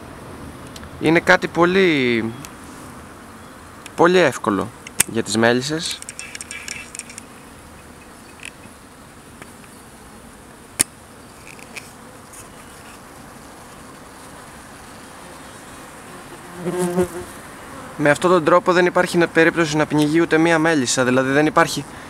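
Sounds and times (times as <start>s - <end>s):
honey bees buzzing: 2.0s - 18.8s
sharp click: 4.8s - 5.2s, 6.0s - 7.3s, 10.8s - 11.9s.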